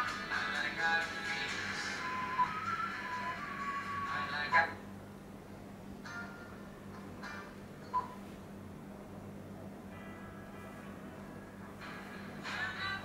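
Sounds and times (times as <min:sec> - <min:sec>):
pop music from car stereo: 0:00.0 - 0:04.6, 0:11.8 - 0:13.0.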